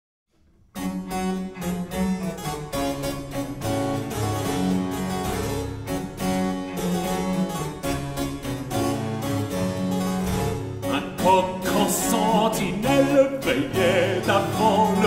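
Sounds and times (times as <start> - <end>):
baroque ensemble with harpsichord: 0.8 - 15.0.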